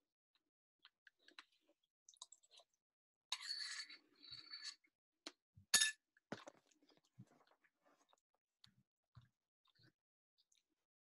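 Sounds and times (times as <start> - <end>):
spoon scraping ceramic bowl: 3.3 - 4.9.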